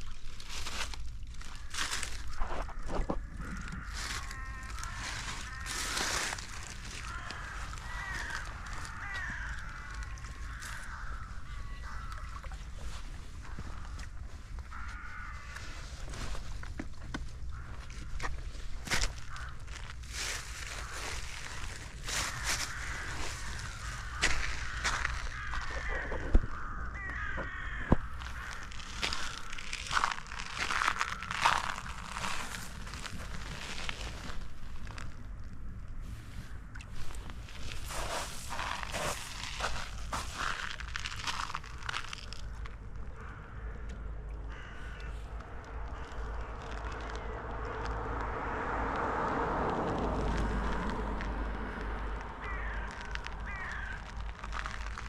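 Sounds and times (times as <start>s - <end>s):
crunching footsteps on shore: 0.0s - 55.0s
steady low rumble: 0.2s - 55.0s
steady hiss of wind or water: 2.3s - 26.0s, 31.9s - 40.4s
bird harsh calls: 22.2s - 29.5s, 52.4s - 54.1s.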